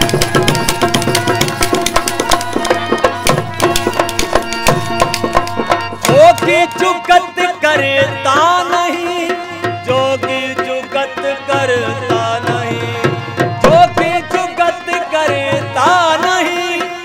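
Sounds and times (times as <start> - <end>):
wooden clappers and drum: 0.0 - 7.0
man singing: 0.0 - 17.0.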